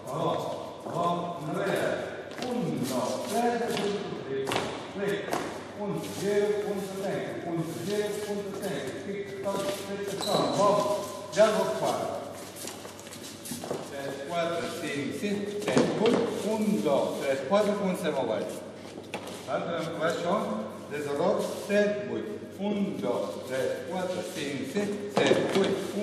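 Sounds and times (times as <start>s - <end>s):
voices talking in echoing hall: 0.0s - 26.0s.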